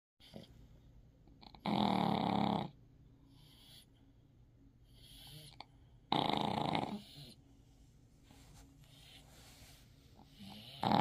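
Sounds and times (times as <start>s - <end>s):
dog snoring: 1.4s - 3.9s, 4.9s - 7.4s, 10.2s - 11.0s
dog breathing: 8.8s - 11.0s.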